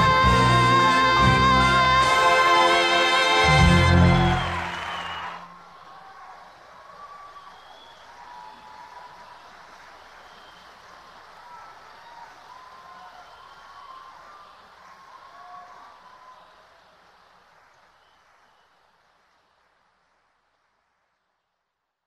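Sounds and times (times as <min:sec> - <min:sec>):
cheers and whoops: 0:00.0 - 0:17.0
audience applause: 0:00.0 - 0:21.4.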